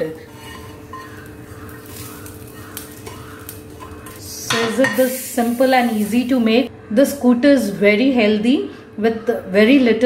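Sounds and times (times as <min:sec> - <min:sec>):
soft scraping in a pan: 0:00.1 - 0:02.2.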